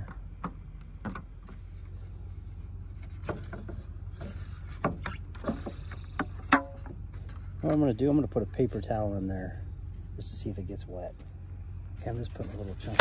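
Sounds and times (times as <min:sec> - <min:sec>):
low steady rumble: 0:00.0 - 0:13.0.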